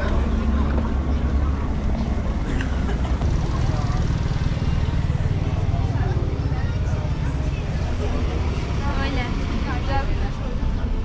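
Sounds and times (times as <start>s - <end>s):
indistinct voices: 0.0s - 11.0s
low rumble of traffic: 0.0s - 11.0s.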